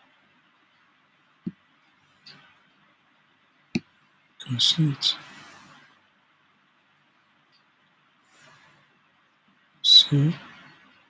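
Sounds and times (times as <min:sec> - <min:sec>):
man speaking: 0:04.4 - 0:05.2, 0:09.9 - 0:10.4.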